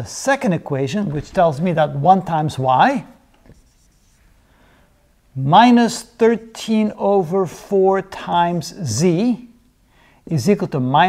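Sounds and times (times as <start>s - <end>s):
marker writing on whiteboard: 3.4s - 4.2s.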